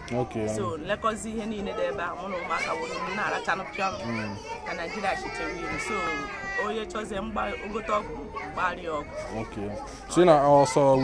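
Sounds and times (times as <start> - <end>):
children's voices: 0.0 - 11.0
woman talking: 0.6 - 4.0, 4.7 - 9.1.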